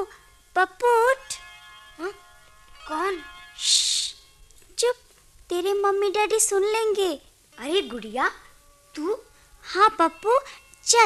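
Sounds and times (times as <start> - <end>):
child speaking: 2.0 - 2.2, 2.8 - 4.2, 4.8 - 11.0.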